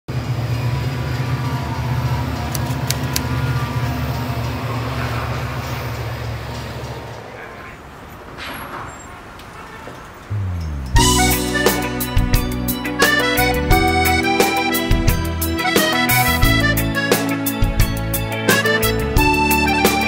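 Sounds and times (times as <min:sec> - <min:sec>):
train rumbling: 0:00.1 - 0:14.2
sharp clicks: 0:02.5 - 0:03.3.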